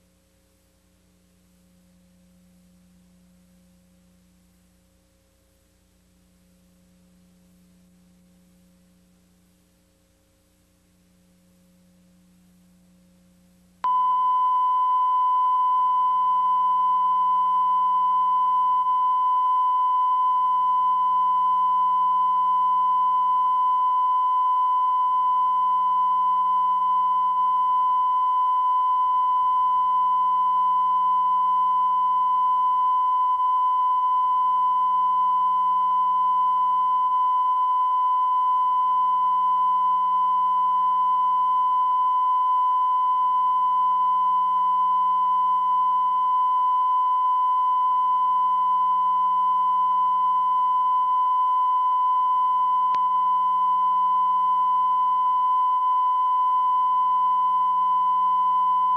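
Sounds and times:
faint low hum: 0:00.0 - 0:58.9
high-pitched test tone beep: 0:13.8 - 0:58.9.

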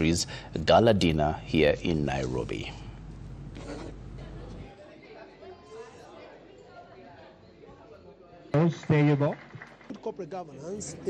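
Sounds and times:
chatter of many people: 0:03.5 - 0:11.0.

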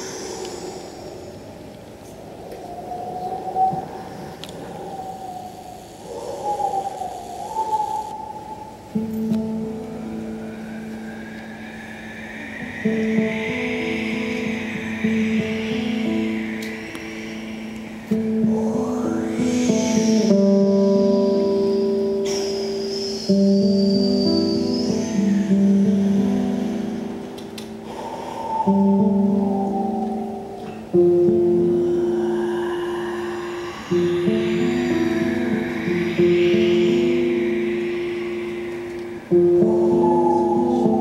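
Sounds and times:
airy vocal sounds: 0:00.0 - 0:41.0
whistle-like mouth sounds: 0:00.0 - 0:41.0.

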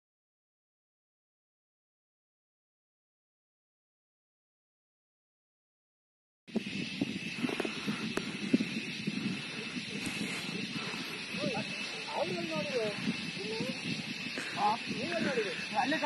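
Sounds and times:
steady high hiss: 0:06.5 - 0:16.0
people talking: 0:09.1 - 0:16.0.

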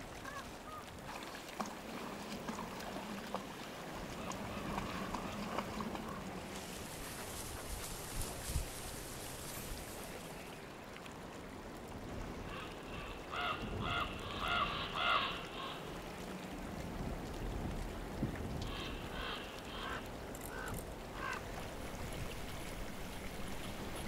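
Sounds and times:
outdoor background hiss: 0:06.4 - 0:11.7.

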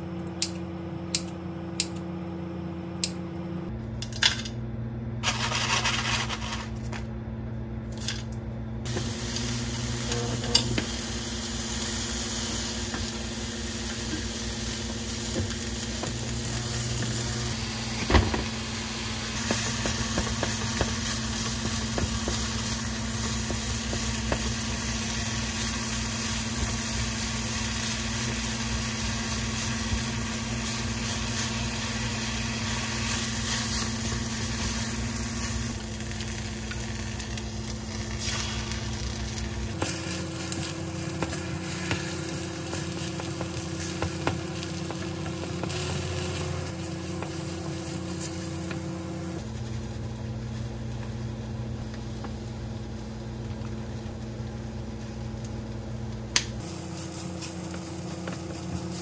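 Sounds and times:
food sizzling in oil: 0:08.9 - 0:53.2, 0:56.5 - 0:59.0.

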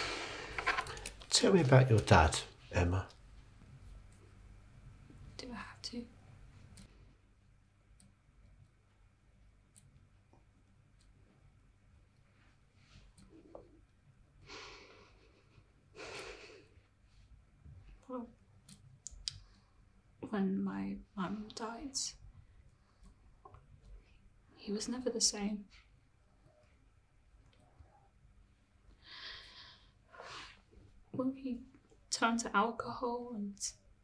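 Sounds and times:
woman speaking: 0:05.4 - 0:06.1, 0:20.2 - 0:22.2, 0:24.6 - 0:25.7, 0:31.2 - 0:33.8.

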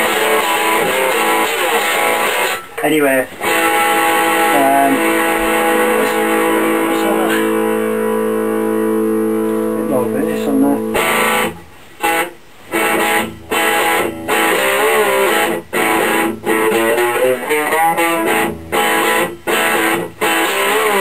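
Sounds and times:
electric guitar through amplifier: 0:00.0 - 0:21.0.

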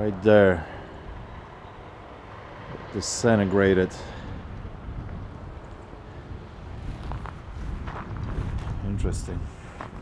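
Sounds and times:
wind rumble on microphone: 0:03.9 - 0:10.0
footsteps on dry ground: 0:06.8 - 0:10.0.

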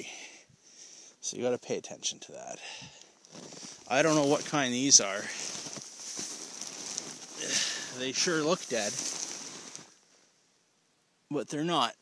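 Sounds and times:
soft rustling: 0:03.2 - 0:10.4.

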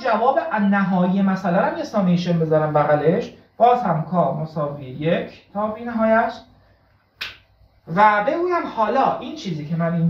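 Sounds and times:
man lecturing: 0:00.0 - 0:06.6, 0:07.8 - 0:10.0.

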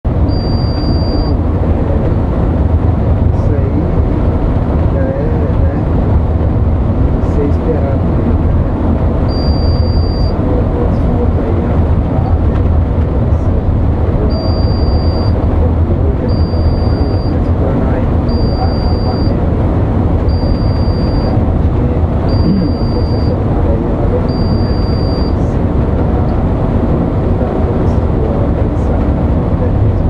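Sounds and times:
bus engine and road rumble: 0:00.0 - 0:30.0.

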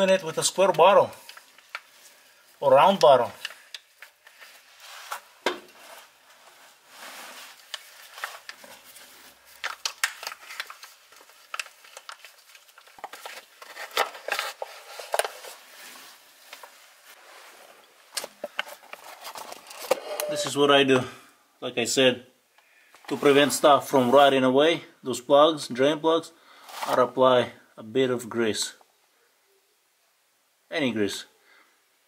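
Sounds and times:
plastic pouch crinkling: 0:07.5 - 0:16.7.

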